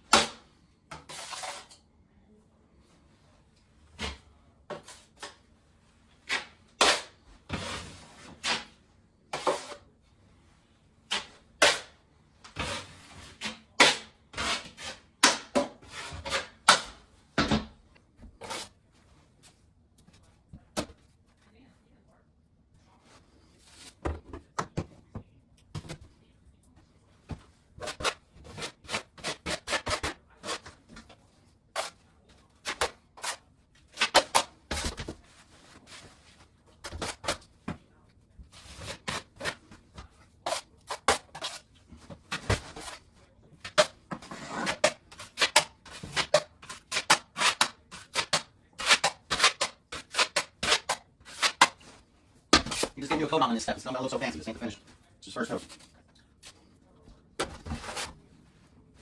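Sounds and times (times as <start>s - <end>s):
spackle knife scraping drywall: 1.0s - 1.8s, 12.6s - 15.1s, 18.4s - 18.8s, 27.8s - 30.8s, 32.7s - 34.9s, 40.4s - 41.7s, 43.7s - 51.8s, 57.6s - 58.2s
knife scraping mud pan: 1.1s - 1.8s, 18.4s - 18.7s, 27.8s - 30.7s, 40.4s - 41.6s, 43.8s - 51.8s.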